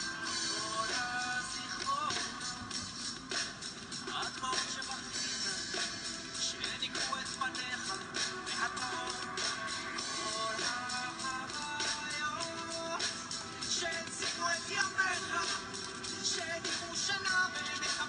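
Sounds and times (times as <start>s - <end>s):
drum kit beat: 0.0s - 18.0s
recorded song backing track: 0.0s - 18.0s.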